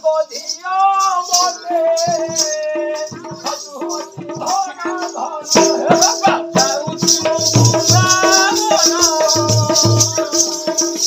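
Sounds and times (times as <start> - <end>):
jingling rattle percussion: 0.0 - 11.0
barrel drum beating: 1.4 - 11.0.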